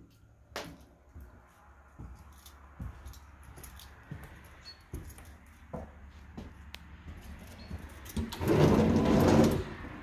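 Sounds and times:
sliding door rolling on track: 0:08.1 - 0:10.0.

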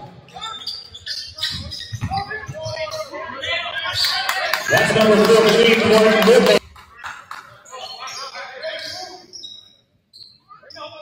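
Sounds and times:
voices talking: 0:01.3 - 0:06.6.

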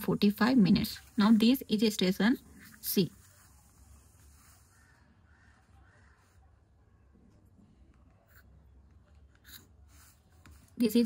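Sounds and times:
woman's voice: 0:00.0 - 0:03.2, 0:10.8 - 0:11.0
pencil drawing on paper: 0:00.0 - 0:06.8, 0:07.7 - 0:11.0.

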